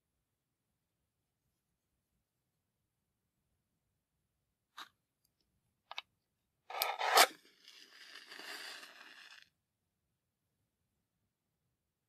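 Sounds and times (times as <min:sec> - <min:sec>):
match striking and igniting: 0:06.7 - 0:09.5
burning match hiss: 0:06.9 - 0:09.5.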